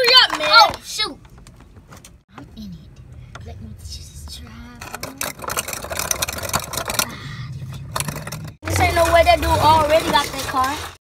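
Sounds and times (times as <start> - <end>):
rattling car engine noise: 0.0 - 11.0.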